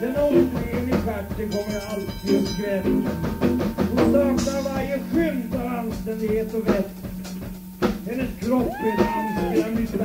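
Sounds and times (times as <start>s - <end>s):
person making cat-like meow: 8.7s - 9.6s
person babbling: 8.8s - 9.6s.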